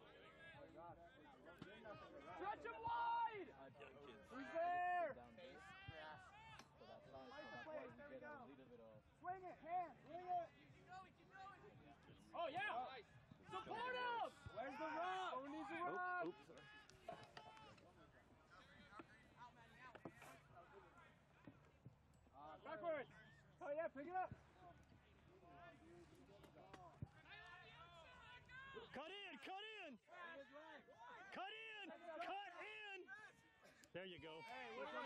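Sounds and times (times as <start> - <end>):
voices calling and shouting: 0.0 - 35.0.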